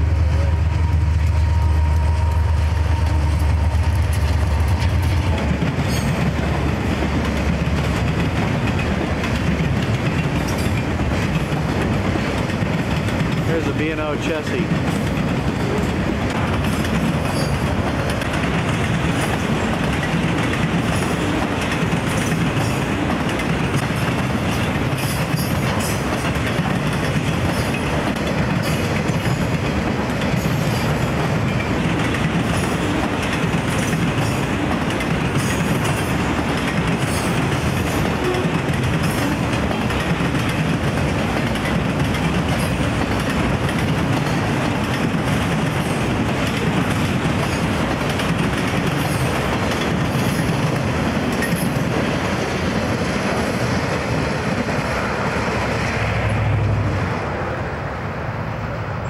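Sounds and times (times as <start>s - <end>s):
steel wheels rolling on rail: 0.0s - 59.0s
light clicks of train wheels: 0.9s - 55.0s.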